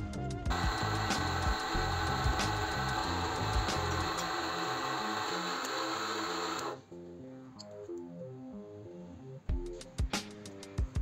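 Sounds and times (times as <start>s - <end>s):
background music with beat: 0.0s - 11.0s
drill press boring steel: 0.5s - 6.8s.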